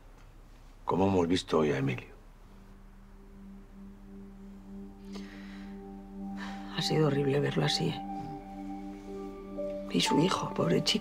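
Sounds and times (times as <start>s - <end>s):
soft drone music: 1.6s - 11.0s.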